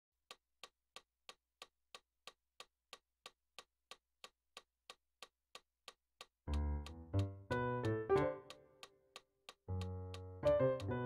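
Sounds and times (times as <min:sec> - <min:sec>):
metronome ticking: 0:05.8 - 0:11.0
keyboard playing: 0:07.2 - 0:08.5.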